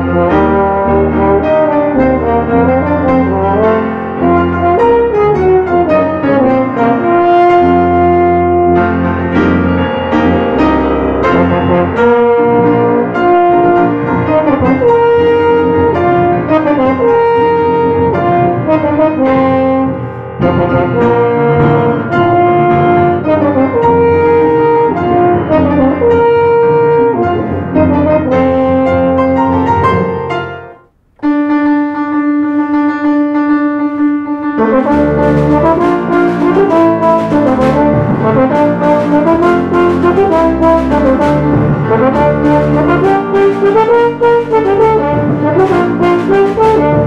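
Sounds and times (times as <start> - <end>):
french horn melody: 0.0 - 47.0
held brass chord: 0.0 - 47.0
piano: 0.0 - 47.0
tuba: 0.0 - 47.0.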